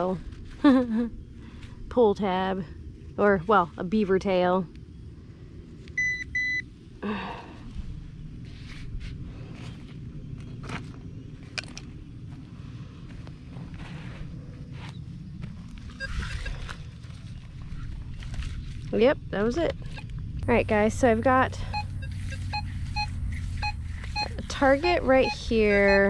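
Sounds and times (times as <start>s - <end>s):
footsteps on dry grass: 8.4s - 19.0s, 21.9s - 26.0s.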